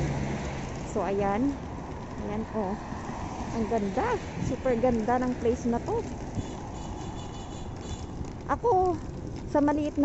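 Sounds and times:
car driving past: 0.0 - 0.9
road traffic noise: 0.0 - 10.0.

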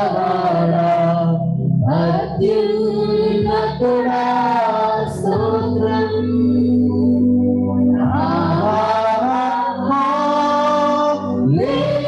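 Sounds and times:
sustained keyboard accompaniment: 0.0 - 12.0
women singing into microphones: 0.0 - 12.0.

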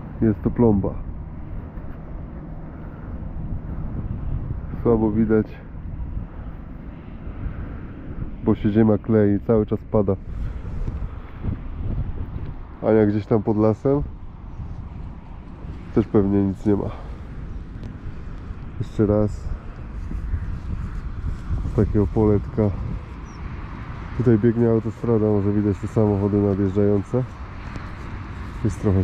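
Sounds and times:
distant motorway traffic rumble: 0.0 - 29.0
wind on microphone: 0.0 - 29.0.

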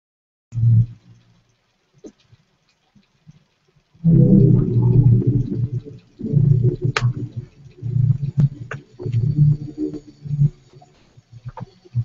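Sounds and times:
sharp clicks: 0.6 - 12.0.

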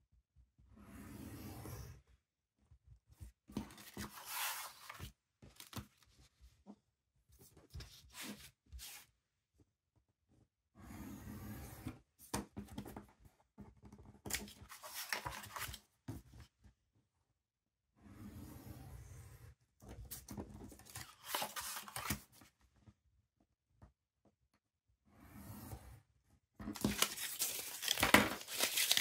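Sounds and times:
craft knife slicing paper: 26.8 - 29.0.

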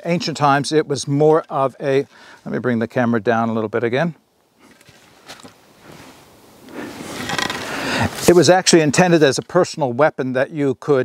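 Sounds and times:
camera handling scrape: 4.6 - 8.3.

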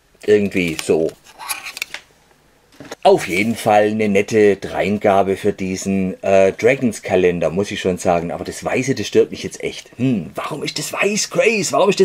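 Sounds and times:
pencil scraping in sharpener: 1.3 - 1.8.

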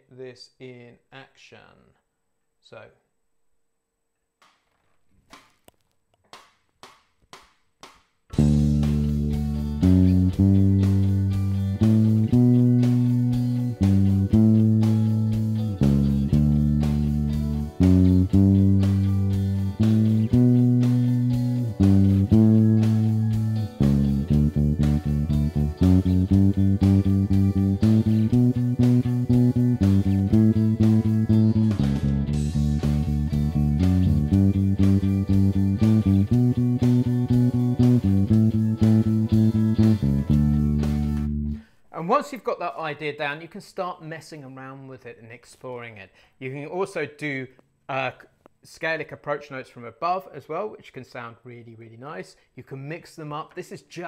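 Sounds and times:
electric bass guitar playing: 8.3 - 41.7.

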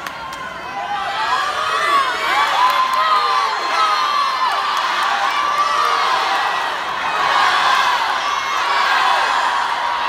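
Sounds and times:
crowd cheering and yelling: 0.0 - 10.0.

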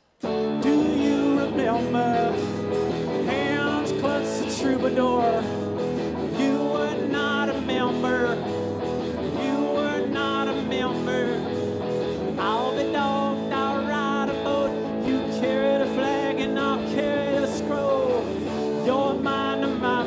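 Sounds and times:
drums: 0.0 - 20.0
electric guitar: 0.0 - 20.0.

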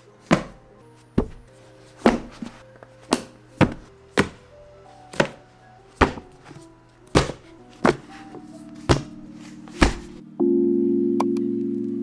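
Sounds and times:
soft melodic background music: 0.0 - 12.0
books thunking onto a stack: 0.2 - 0.6, 1.2 - 4.4, 5.1 - 5.4, 6.0 - 8.2, 8.8 - 10.2.

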